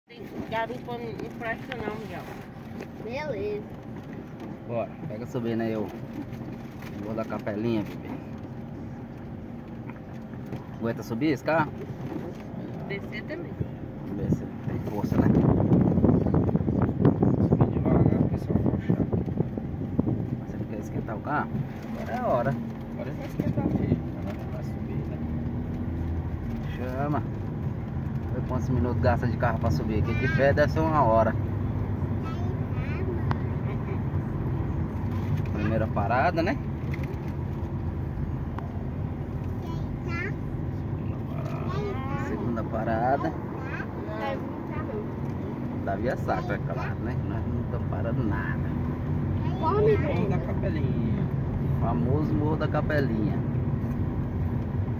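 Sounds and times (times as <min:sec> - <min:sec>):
car engine and tyre rumble: 0:00.0 - 0:54.9.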